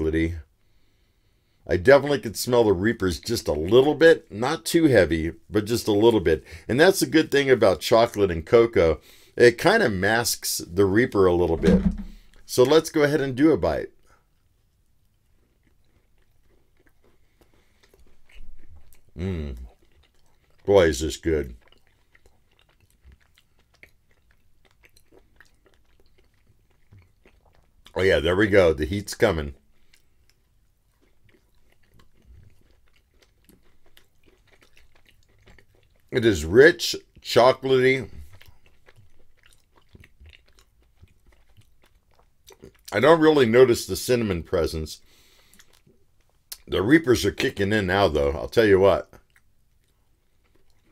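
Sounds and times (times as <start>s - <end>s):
person chewing soft food: 13.9s - 43.6s, 45.0s - 46.8s, 49.0s - 50.9s.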